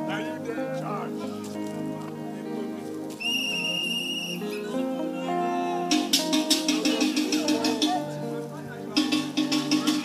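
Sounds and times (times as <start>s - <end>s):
background music with sustained chords: 0.0s - 9.8s
high whistle-like tone: 3.2s - 4.6s.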